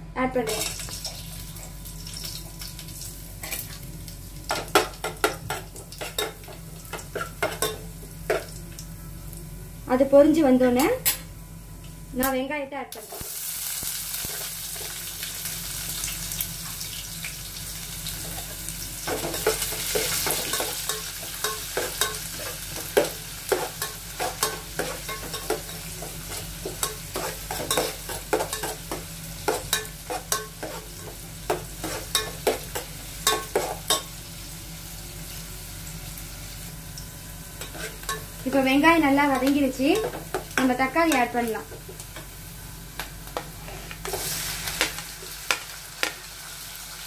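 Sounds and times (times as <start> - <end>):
onions sizzling in hot oil: 0.5 - 10.9, 11.7 - 47.0.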